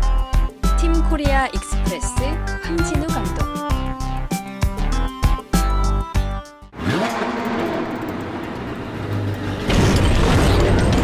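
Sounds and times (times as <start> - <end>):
car speeding past: 6.8 - 10.8.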